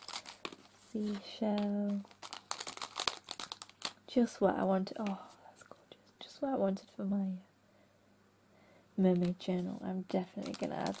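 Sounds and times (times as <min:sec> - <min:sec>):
plastic packet crinkling: 0:00.0 - 0:04.0, 0:09.1 - 0:11.0.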